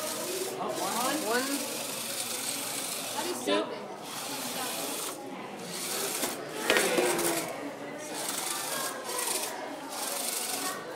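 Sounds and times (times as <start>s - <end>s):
small electric motors whirring: 0.0s - 3.4s, 4.0s - 10.9s.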